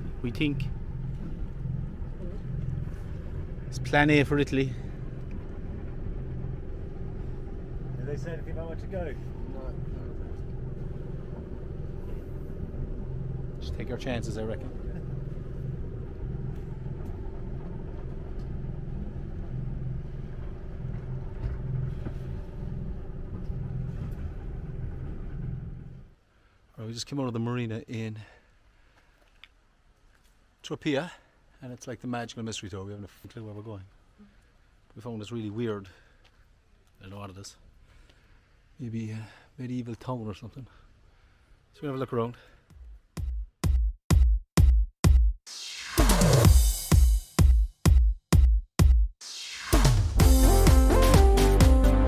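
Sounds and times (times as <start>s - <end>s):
diesel engine low hum: 0.0s - 26.2s.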